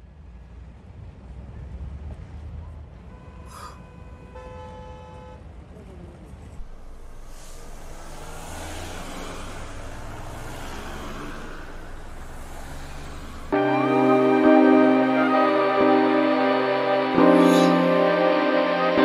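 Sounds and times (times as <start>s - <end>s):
road traffic rumble: 0.0s - 19.0s
car horn toot: 3.1s - 5.4s.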